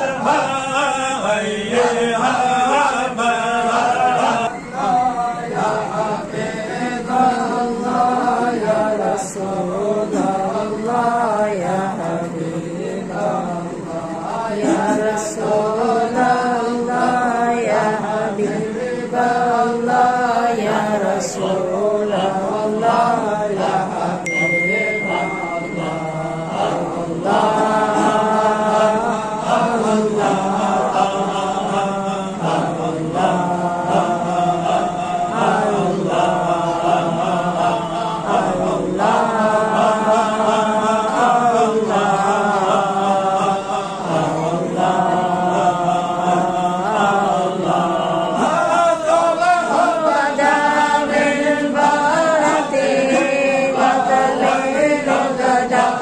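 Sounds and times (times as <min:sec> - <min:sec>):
men chanting in unison: 0:00.0 - 0:56.0.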